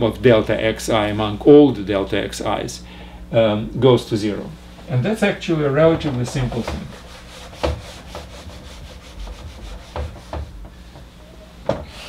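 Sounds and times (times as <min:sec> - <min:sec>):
eraser wiping whiteboard: 0:05.8 - 0:10.6.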